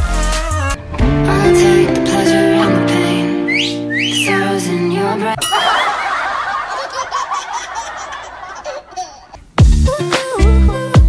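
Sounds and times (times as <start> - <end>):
people giggling: 5.4 - 9.4.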